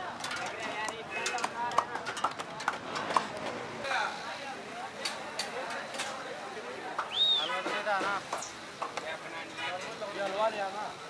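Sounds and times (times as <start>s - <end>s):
crowd chatter: 0.0s - 11.0s
steel plates and dishes clinking: 0.1s - 3.3s.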